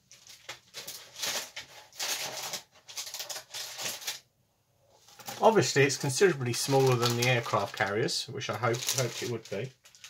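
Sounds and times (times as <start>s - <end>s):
plastic bags crinkling: 0.0s - 4.3s, 5.0s - 10.0s
plastic parts rattling: 6.5s - 8.0s, 8.6s - 10.0s.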